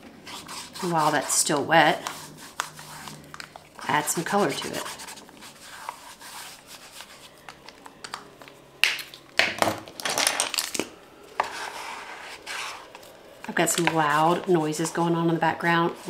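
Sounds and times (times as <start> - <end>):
marker rubbing on paper: 0.3 - 3.2, 3.8 - 7.3.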